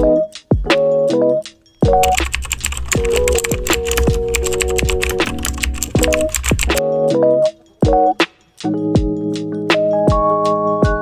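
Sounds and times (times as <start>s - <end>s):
background music with bass beat: 0.0s - 11.0s
keyboard typing clicks: 1.9s - 6.8s.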